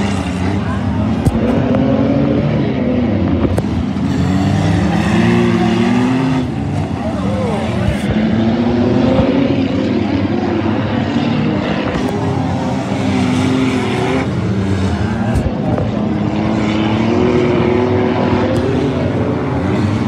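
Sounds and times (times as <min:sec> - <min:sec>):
race car engines revving: 0:00.0 - 0:20.0.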